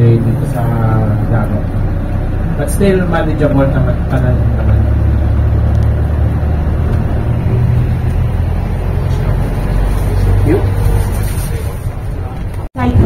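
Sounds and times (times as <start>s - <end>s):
van engine and road rumble: 0.0s - 13.0s.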